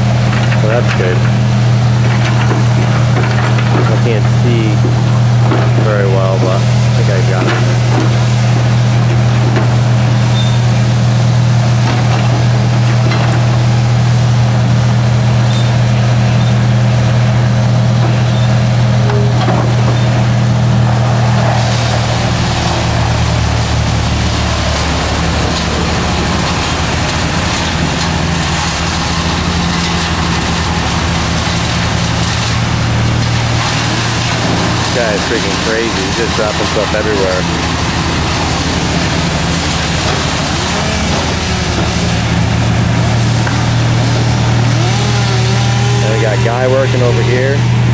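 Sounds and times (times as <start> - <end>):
heavy equipment engine running: 0.0 - 47.9.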